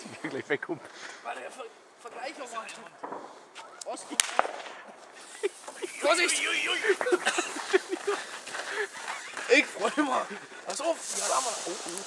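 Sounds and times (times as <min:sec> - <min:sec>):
firecrackers banging: 0:02.0 - 0:12.0.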